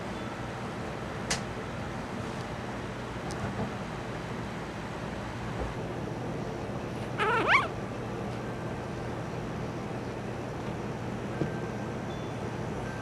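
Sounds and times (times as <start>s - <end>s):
puppy whimpering: 7.0s - 7.8s.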